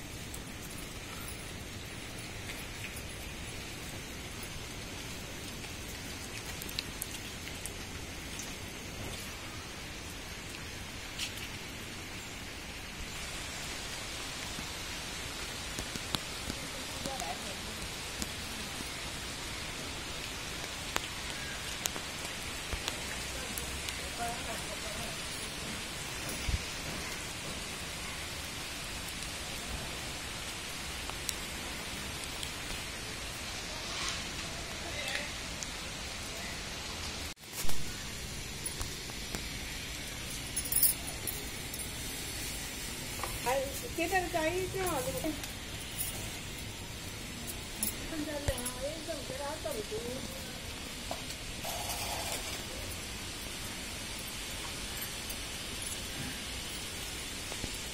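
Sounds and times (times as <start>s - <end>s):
steady rain hiss: 0.0s - 57.9s.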